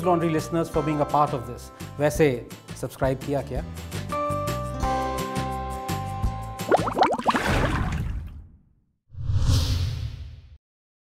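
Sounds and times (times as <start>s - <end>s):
whoosh with deep boom: 9.1s - 10.6s.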